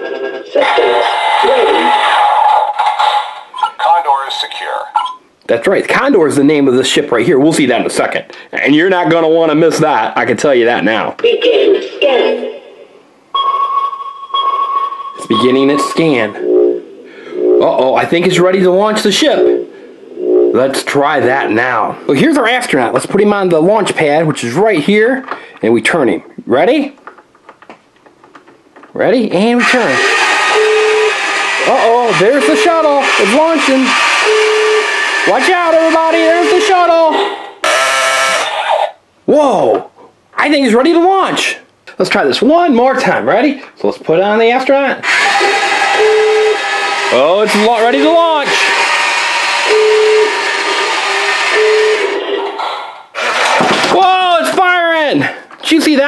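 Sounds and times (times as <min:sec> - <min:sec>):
toy electronic beep tone: 0:13.4 - 0:16.4, 0:34.2 - 0:35.0, 0:46.0 - 0:46.6, 0:49.7 - 0:50.4, 0:51.5 - 0:52.2
toy speaker electronic buzz: 0:15.6 - 0:16.8, 0:29.6 - 0:36.8, 0:37.6 - 0:39.0, 0:45.0 - 0:52.3.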